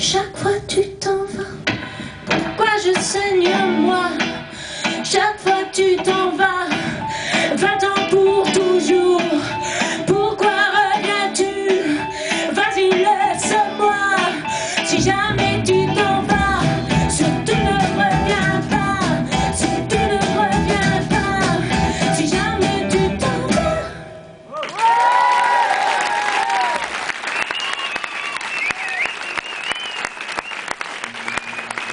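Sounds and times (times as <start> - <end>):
live pop-rock band playing: 1.7 - 24.1
audience applause: 24.5 - 31.9
audience whistles and cheers: 24.5 - 31.9.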